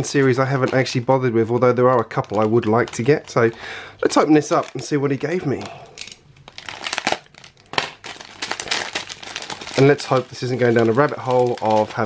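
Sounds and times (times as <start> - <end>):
plastic bag tearing and crinkling: 2.0 - 4.9, 6.5 - 12.0.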